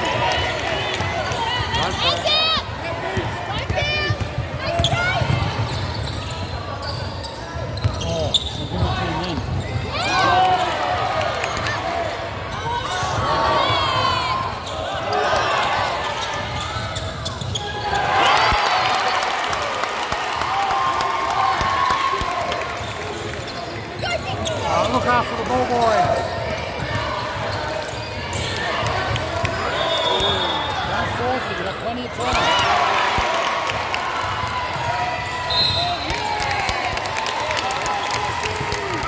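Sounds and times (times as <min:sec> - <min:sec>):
sneakers squeaking: 0:03.2 - 0:10.2, 0:14.1 - 0:18.2, 0:22.8 - 0:32.6.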